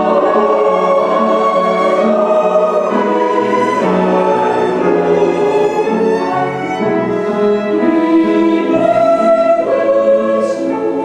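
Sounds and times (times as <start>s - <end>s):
choir singing held notes: 0.0s - 11.0s
violins: 0.0s - 11.0s.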